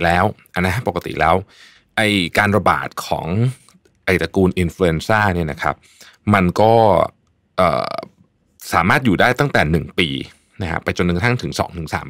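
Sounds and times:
man talking: 0.0 - 12.0.

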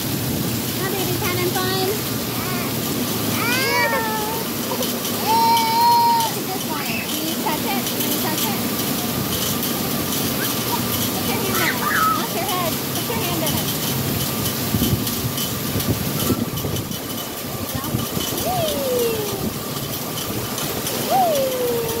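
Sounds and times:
water jets spraying and splashing: 0.0 - 22.0
people's voices and calls: 0.8 - 22.0.

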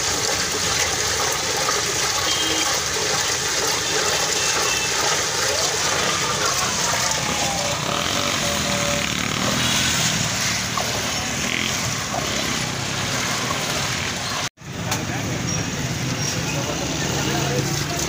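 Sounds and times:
ladle stirring drink in steel pot: 0.0 - 8.7
street noise: 0.0 - 18.0.

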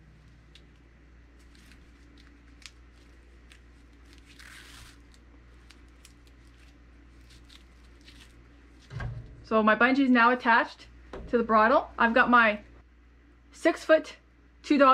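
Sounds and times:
low steady hum: 0.0 - 14.9.

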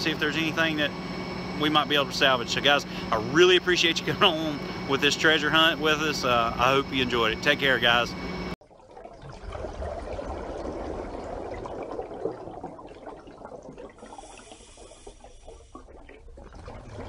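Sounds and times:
water bubbling and trickling: 8.3 - 17.0.

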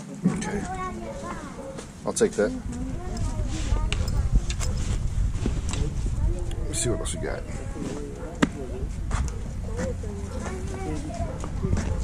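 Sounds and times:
faint voices: 0.0 - 12.0
microphone handling rumble: 2.5 - 6.8, 7.4 - 12.0.

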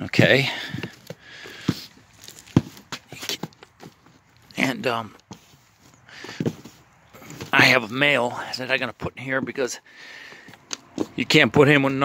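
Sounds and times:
hand rustling damp peat moss: 1.9 - 2.8.

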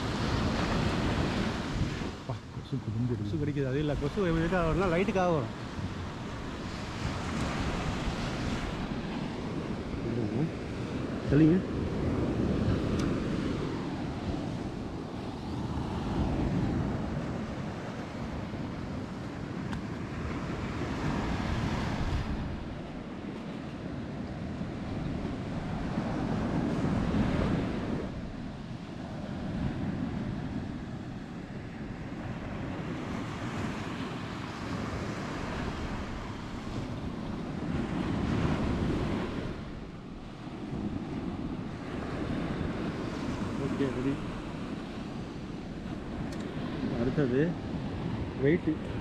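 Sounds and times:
sea surf washing on shore: 0.0 - 49.0
wind rumbling on microphone: 0.0 - 49.0.

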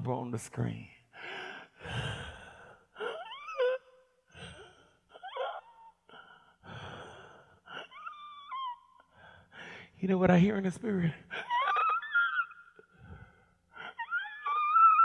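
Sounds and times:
man gasping and wheezing: 1.2 - 3.6, 4.3 - 8.4, 11.3 - 14.6.

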